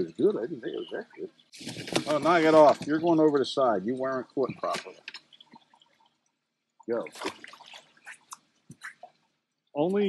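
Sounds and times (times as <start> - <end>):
person speaking: 0.0 - 1.3, 2.0 - 5.1
water dripping: 0.0 - 10.0
fish splashing into water: 1.6 - 2.5, 7.0 - 9.2.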